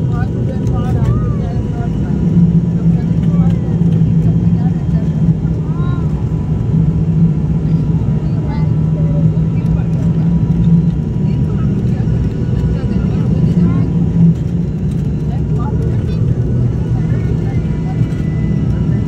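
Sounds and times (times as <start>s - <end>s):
airliner engine drone in cabin: 0.0s - 19.0s.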